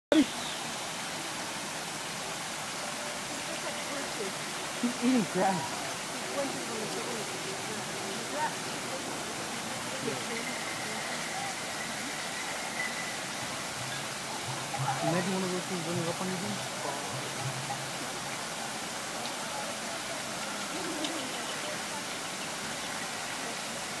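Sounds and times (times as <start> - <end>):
faint voices: 0.1 - 24.0
running water: 0.1 - 24.0.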